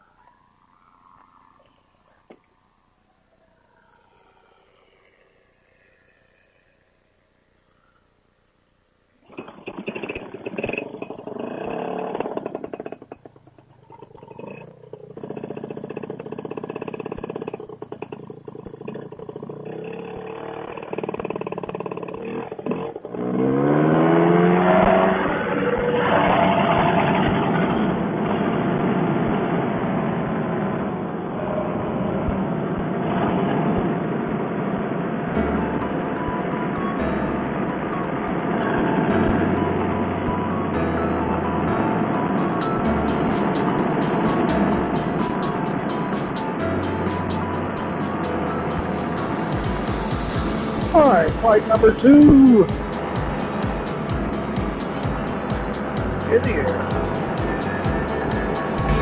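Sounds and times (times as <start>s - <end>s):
two-stroke engine revving: 9.3s - 59.0s.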